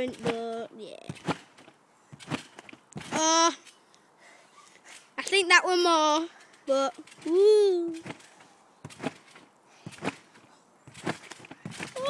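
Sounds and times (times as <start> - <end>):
feet thumping on trampoline: 0.0 - 3.7, 4.9 - 12.0.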